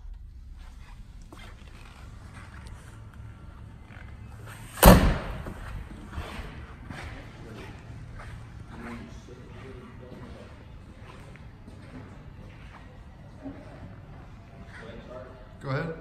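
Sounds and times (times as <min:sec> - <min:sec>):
loud slam with echo: 0:04.7 - 0:05.8
faint low voices: 0:06.0 - 0:16.0.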